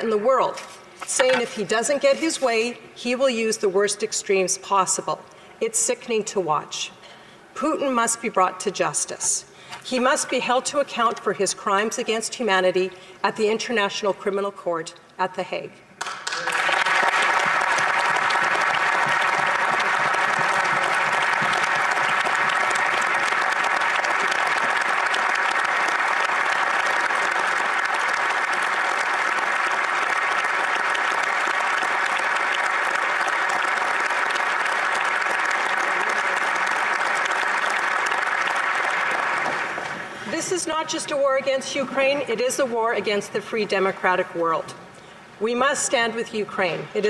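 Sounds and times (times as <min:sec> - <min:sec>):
many people clapping: 0:16.0 - 0:40.9.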